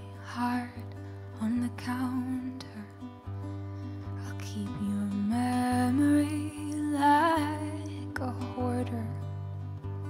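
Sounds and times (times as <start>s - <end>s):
sustained acoustic guitar chord: 0.0s - 10.0s
woman singing long held notes: 4.2s - 9.2s.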